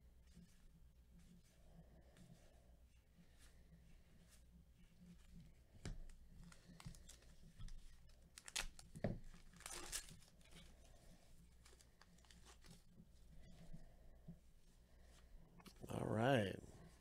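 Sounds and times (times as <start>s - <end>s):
cards handling noise: 5.8s - 10.5s, 11.5s - 12.9s
wrapper crackling and tearing: 8.3s - 10.3s.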